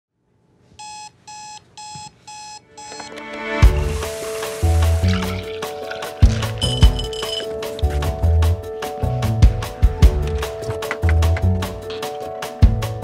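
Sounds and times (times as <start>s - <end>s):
alarm clock beeping: 0.8s - 3.2s, 6.6s - 7.5s
music with bass beat: 3.6s - 13.0s.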